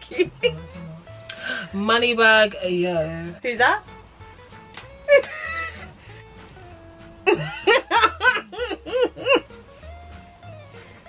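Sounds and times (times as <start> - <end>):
soft background music: 0.0 - 11.0
women laughing: 5.1 - 5.9, 7.2 - 9.5.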